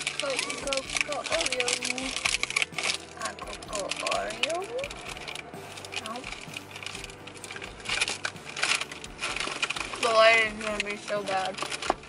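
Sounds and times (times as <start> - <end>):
cookies crackling and rustling: 0.0 - 12.0.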